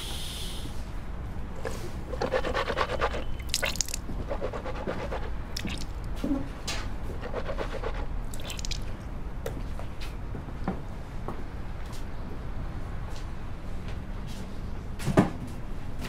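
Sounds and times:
toothbrush scrubbing: 1.6s - 5.9s, 7.1s - 8.8s.

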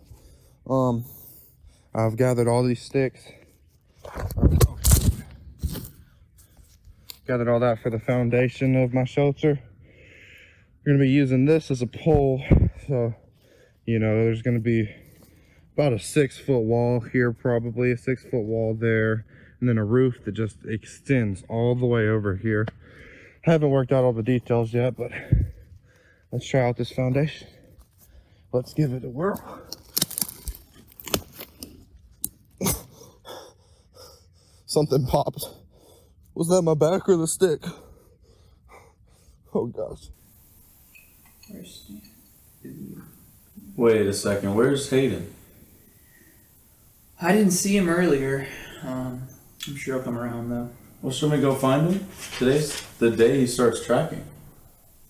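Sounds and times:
dry sticks crunching: 29.3s - 32.4s.

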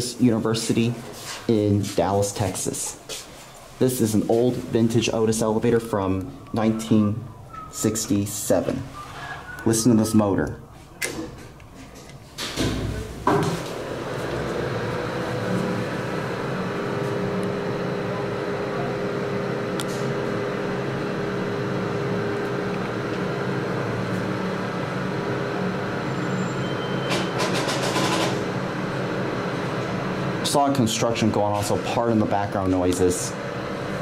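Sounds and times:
elevator machinery humming: 4.4s - 10.5s, 11.2s - 34.0s.

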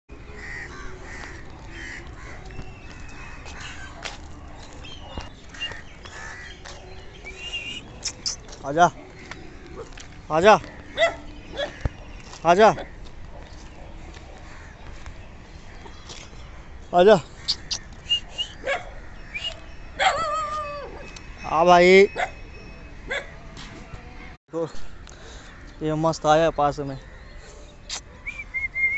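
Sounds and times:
dog barking: 10.8s - 12.1s, 18.6s - 19.0s, 23.1s - 23.3s
dog yipping: 10.9s - 11.8s, 18.4s - 21.2s, 22.1s - 22.4s, 23.1s - 23.3s.

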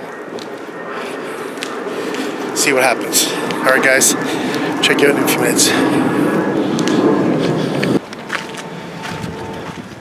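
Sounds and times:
city street background noise: 0.0s - 10.0s.

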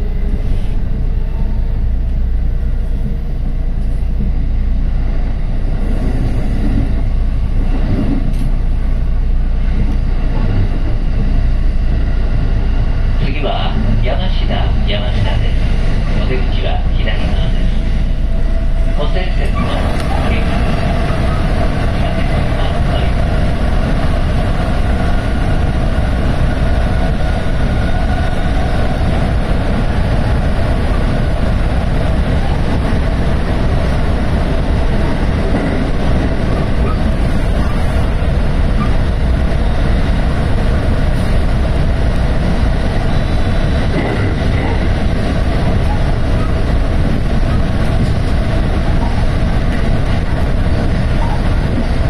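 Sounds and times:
train wheels rumbling on rail: 0.0s - 52.0s.

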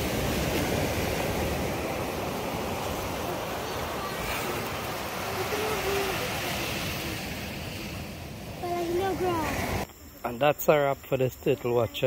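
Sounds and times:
ocean surf washing onto beach: 0.0s - 9.9s
faint voices: 3.2s - 7.4s.

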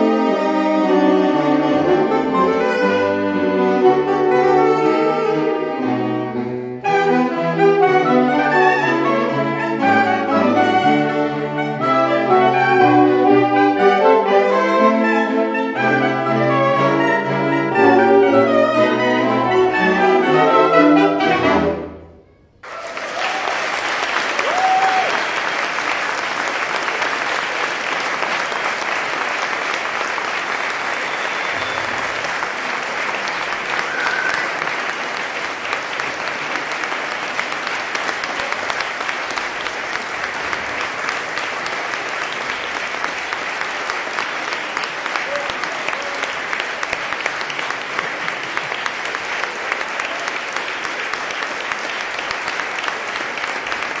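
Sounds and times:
audience applauding: 22.6s - 54.0s.

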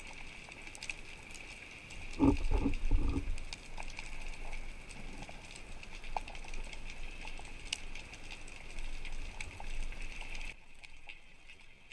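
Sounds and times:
muffled underwater hiss: 0.0s - 11.9s
low pulsing rumble: 2.1s - 3.5s.

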